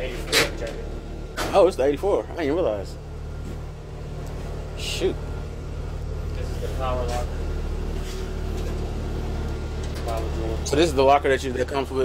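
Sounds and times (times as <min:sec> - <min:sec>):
low mechanical hum of machinery: 0:00.0 - 0:12.0.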